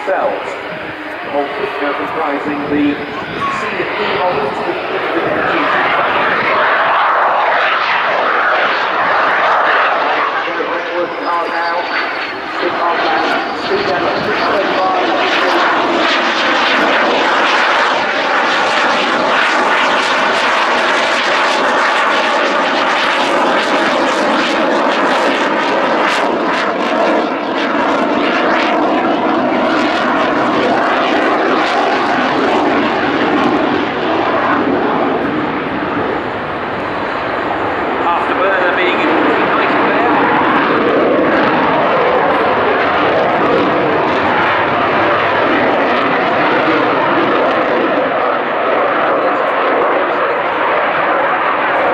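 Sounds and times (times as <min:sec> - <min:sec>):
jet engine roaring: 0:00.0 - 0:51.9.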